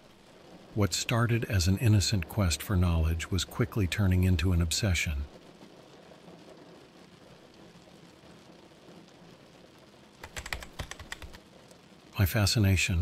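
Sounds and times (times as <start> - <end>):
faint background hiss: 0.0 - 13.0
computer keyboard typing: 10.2 - 11.4.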